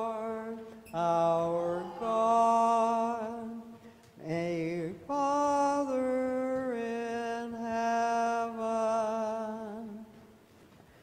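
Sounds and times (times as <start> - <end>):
chant sung in long held notes: 0.0 - 10.0.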